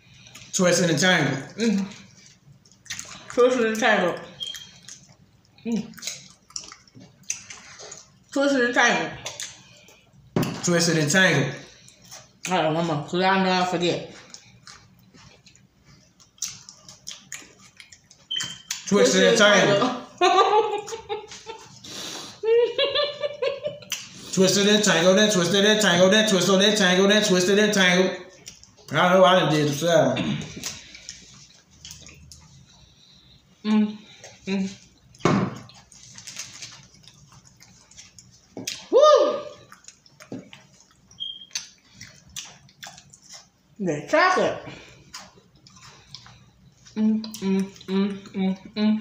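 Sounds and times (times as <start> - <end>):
chewing mouth sounds: 1.5 - 8.4, 14.1 - 18.9, 34.1 - 38.9, 39.5 - 43.7, 45.0 - 48.7
foil wrappers rustling: 35.8 - 38.4
person shouting woo: 38.9 - 39.6
person humming: 47.0 - 49.0.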